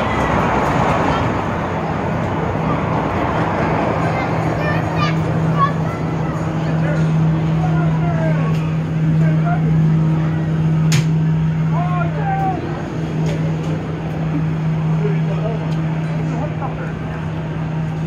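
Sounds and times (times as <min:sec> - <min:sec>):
distant voices: 0:00.0 - 0:18.0
low machine hum: 0:00.0 - 0:18.0.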